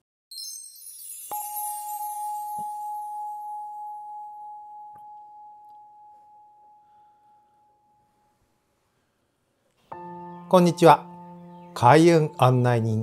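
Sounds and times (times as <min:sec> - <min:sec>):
high shimmering chime: 0:00.3 - 0:05.0
bowl bell ringing: 0:00.3 - 0:08.4.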